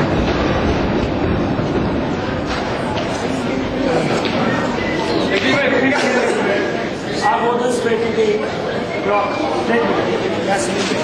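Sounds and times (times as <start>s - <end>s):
train rumbling and rattling: 0.0s - 3.3s.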